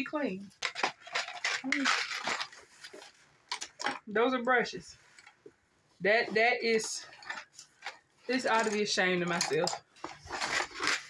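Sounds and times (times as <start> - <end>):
brush handles clattering in box: 0.6 - 2.6, 6.7 - 11.0.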